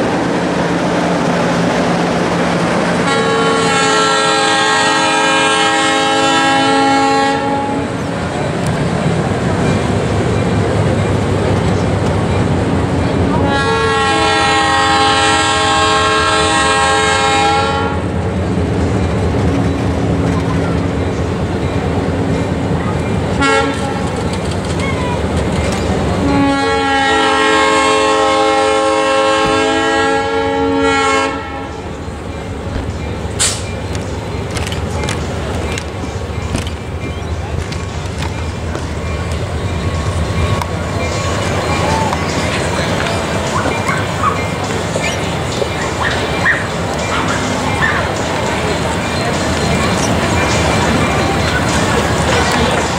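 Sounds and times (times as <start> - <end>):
locomotive air horn blasts: 3.0 - 7.9, 13.4 - 18.0, 23.4 - 23.9, 26.2 - 31.8.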